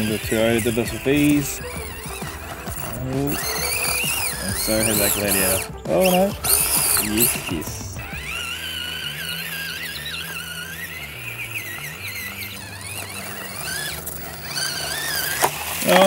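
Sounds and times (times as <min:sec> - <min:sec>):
background music with bass line: 0:00.0 - 0:16.0
small electric motor whining: 0:00.0 - 0:16.0.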